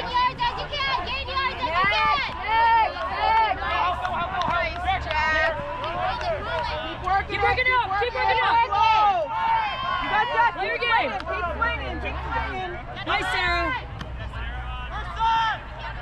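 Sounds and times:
many voices shouting: 0:00.0 - 0:16.0.

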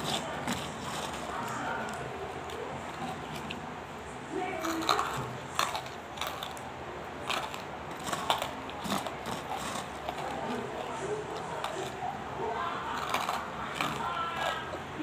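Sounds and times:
hard pieces crunching and clicking: 0:00.0 - 0:03.7, 0:04.6 - 0:12.0, 0:12.8 - 0:15.0.

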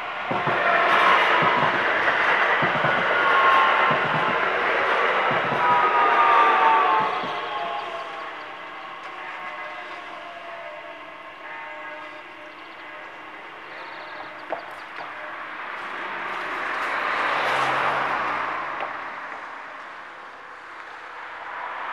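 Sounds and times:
train rolling over rails: 0:00.0 - 0:21.9.

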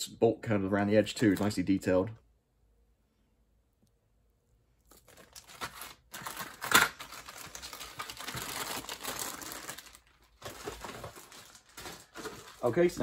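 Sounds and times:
plastic bags crinkling: 0:04.8 - 0:13.0.

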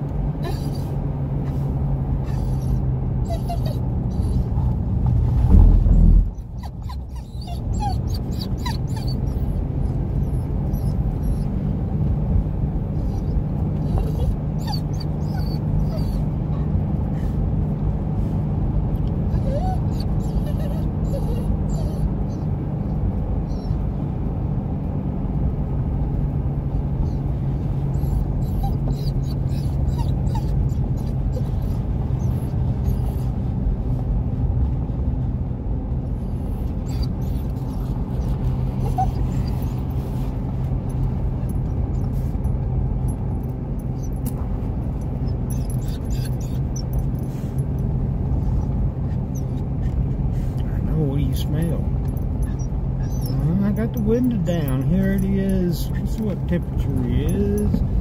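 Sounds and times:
dog whimpering: 0:00.4 - 0:01.6, 0:02.2 - 0:04.7, 0:05.6 - 0:11.6, 0:13.0 - 0:16.7, 0:19.3 - 0:22.5, 0:23.5 - 0:23.8, 0:27.9 - 0:33.4, 0:36.3 - 0:40.3, 0:43.9 - 0:44.4, 0:45.2 - 0:47.6, 0:48.4 - 0:50.0, 0:51.7 - 0:58.0
car cabin rumble: 0:03.0 - 0:14.6, 0:25.2 - 0:58.0.

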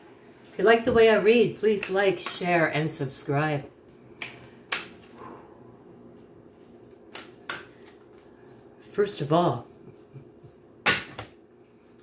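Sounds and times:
cards being shuffled: 0:06.1 - 0:08.9.

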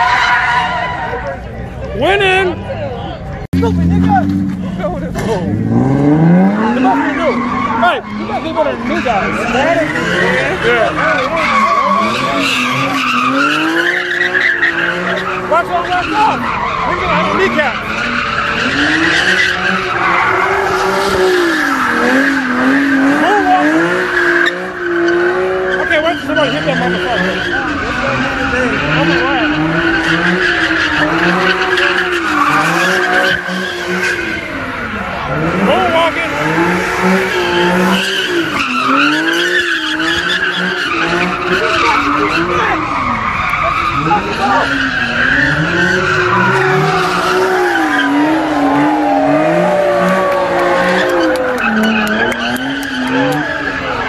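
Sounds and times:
car engine revving: 0:00.0 - 0:54.0
tyres squealing: 0:03.6 - 0:54.0.

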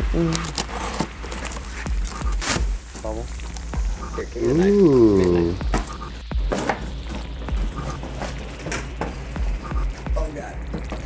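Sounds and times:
cardboard box being opened: 0:00.0 - 0:03.6
background music: 0:00.0 - 0:11.0
packing crackling: 0:00.0 - 0:11.0.

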